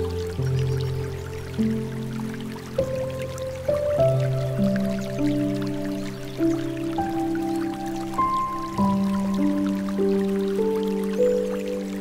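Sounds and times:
slow gentle piano music: 0:00.0 - 0:12.0
trickling and dripping water: 0:00.0 - 0:12.0.

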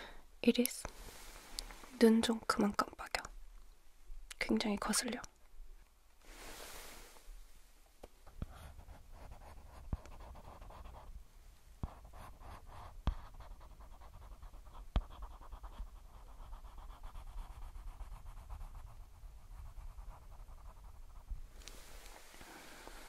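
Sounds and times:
brush stroking and scratching: 0:13.6 - 0:22.3.

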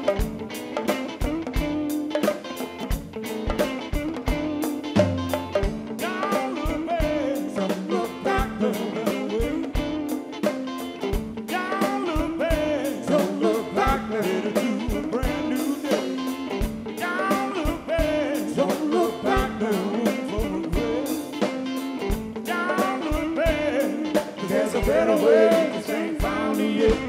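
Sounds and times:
bongos and timbales: 0:00.0 - 0:27.0
soul blues-rock band: 0:00.0 - 0:27.0
person singing: 0:05.8 - 0:10.3, 0:11.4 - 0:21.7, 0:22.3 - 0:27.0.

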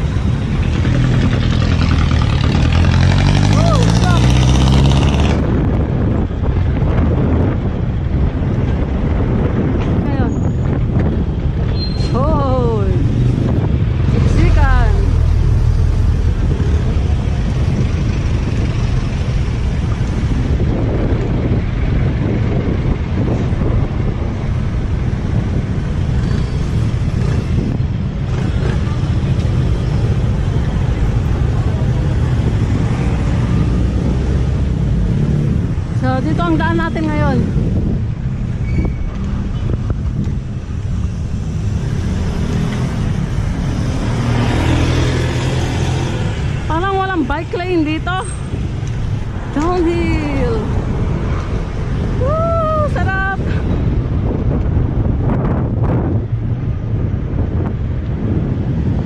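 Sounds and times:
street traffic: 0:00.0 - 0:59.0
wind on microphone: 0:00.0 - 0:59.0.

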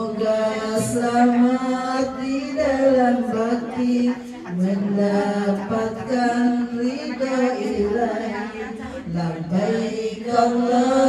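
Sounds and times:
group of voices chanting in unison: 0:07.1 - 0:11.0.

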